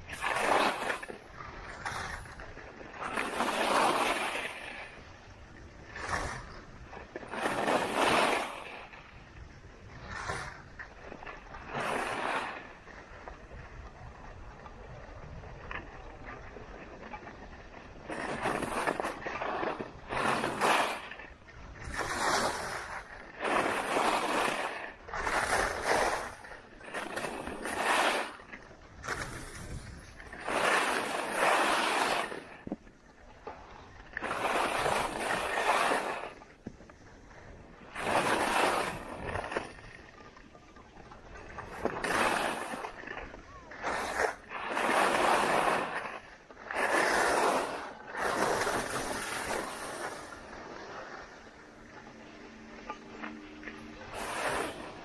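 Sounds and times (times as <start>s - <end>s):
ski edges scraping snow: 0.1s - 9.0s, 9.9s - 13.2s, 15.6s - 32.8s, 33.4s - 40.6s, 41.2s - 51.4s, 52.8s - 55.0s.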